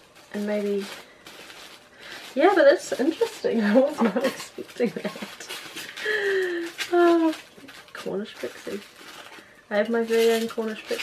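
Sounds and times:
woman laughing softly: 3.7 - 6.8.

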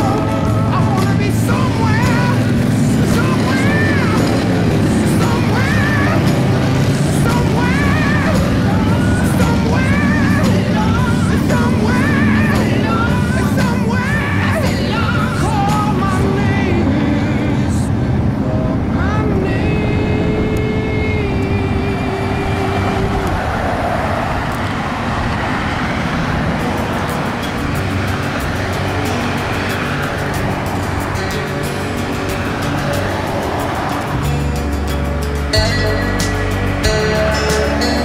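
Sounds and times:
music playing: 0.0 - 23.8, 25.6 - 38.0
cars passing on highway: 0.0 - 38.0.

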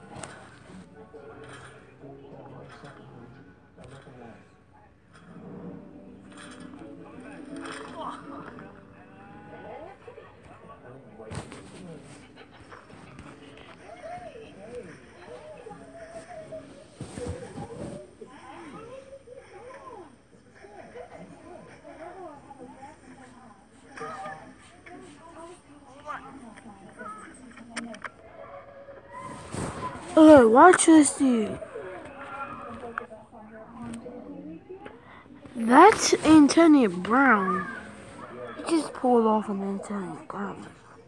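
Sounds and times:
faint voices from video: 0.0 - 41.0
people talking: 29.8 - 31.7, 35.5 - 37.8, 38.6 - 40.8.

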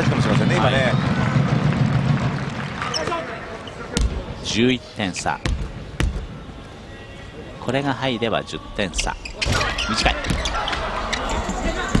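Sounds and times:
gymnasium crowd noise: 0.0 - 12.0
basketball bouncing on court: 5.4 - 6.3.

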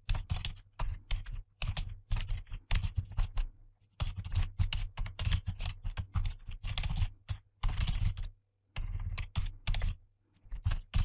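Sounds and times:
typing on computer keyboard: 0.0 - 11.0.

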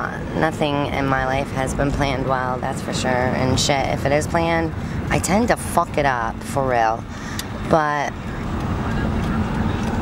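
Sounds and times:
car engine rumble: 0.0 - 10.0.

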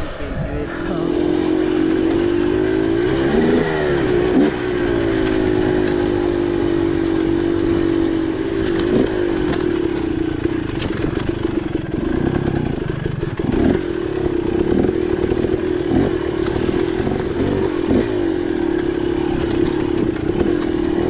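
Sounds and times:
dirt bike engine running: 0.0 - 21.0.

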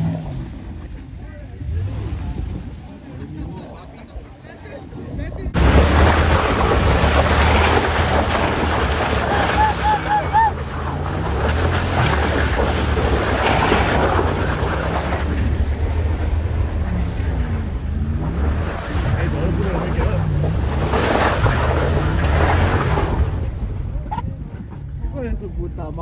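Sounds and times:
off-road vehicle engine: 0.0 - 26.0
wind buffeting microphone: 0.0 - 26.0.

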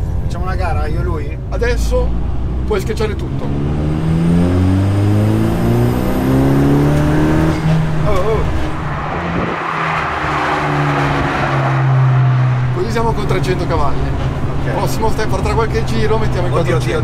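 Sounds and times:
car engine at full throttle: 1.5 - 17.0.

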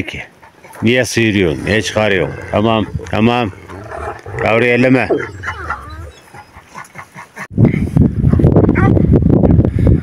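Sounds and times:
dog whimpering and yipping: 5.0 - 6.7
wind rumble on microphone: 7.5 - 10.0.

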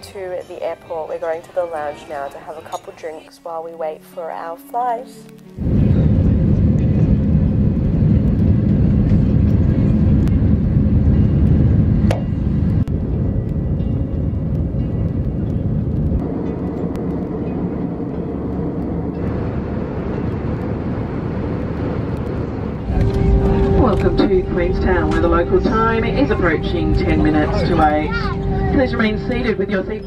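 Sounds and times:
jet engines rumbling in cabin: 5.6 - 30.0.

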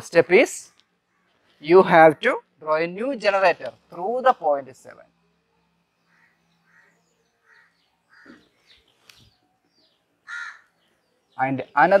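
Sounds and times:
crow cawing: 1.0 - 1.6, 6.0 - 8.7, 10.2 - 10.9.

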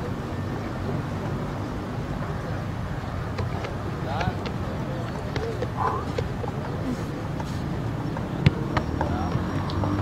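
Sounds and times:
distant players calling: 2.3 - 10.0.

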